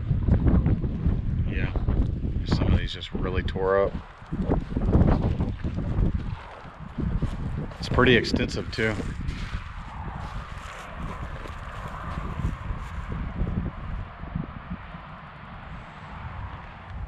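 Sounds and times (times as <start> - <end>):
wind rumble on microphone: 0.0 - 17.0
footsteps on dry grass: 4.4 - 13.5.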